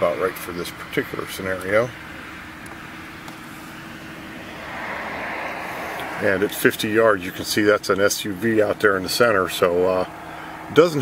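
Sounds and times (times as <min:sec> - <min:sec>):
steady low hum: 0:02.1 - 0:07.9
passing vehicle: 0:03.4 - 0:08.4.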